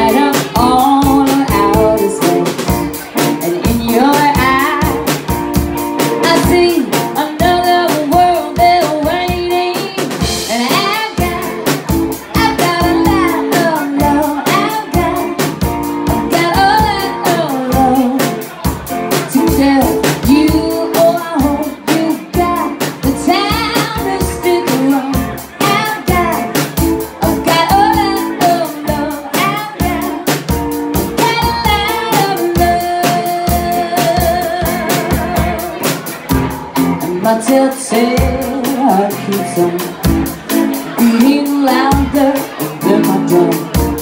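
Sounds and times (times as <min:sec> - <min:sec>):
woman singing lead: 0:00.0 - 0:36.0, 0:36.8 - 0:44.0
drum kit beat: 0:00.0 - 0:44.0
electric guitar: 0:00.0 - 0:44.0.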